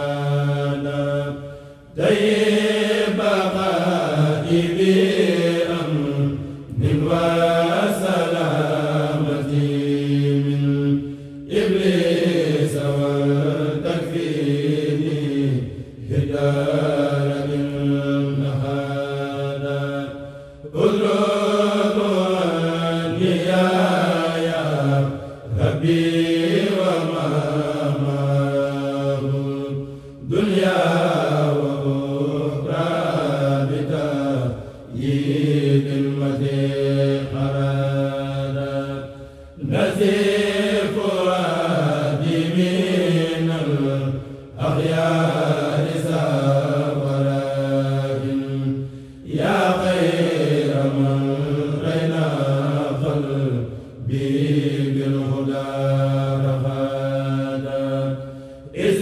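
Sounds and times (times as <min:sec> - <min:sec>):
men chanting through microphones: 0:00.0 - 0:59.0.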